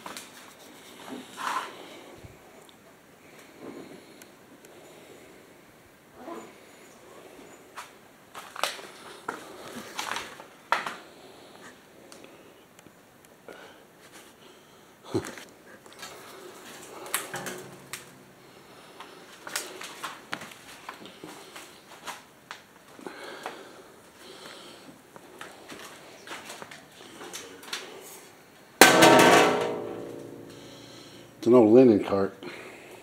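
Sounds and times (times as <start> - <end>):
loud metallic clang: 28.8 - 31.4.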